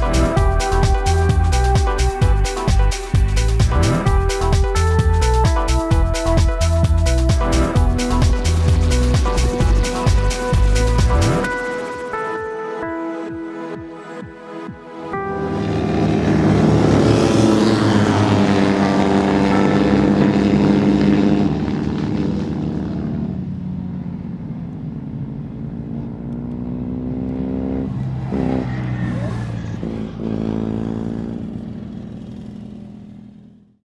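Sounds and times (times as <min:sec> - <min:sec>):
racing car engines passing: 0:15.2 - 0:32.6.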